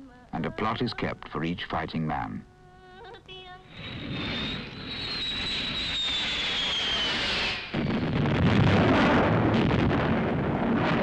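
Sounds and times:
jet aircraft roaring overhead: 3.7s - 9.4s
bomb explosion: 3.8s - 11.0s.

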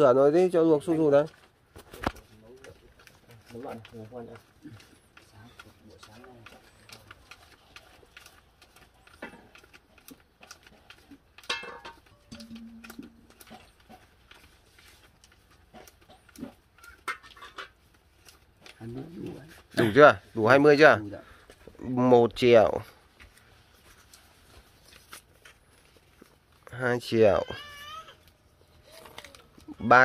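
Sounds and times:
banknotes flicked and rustling: 0.7s - 19.8s.

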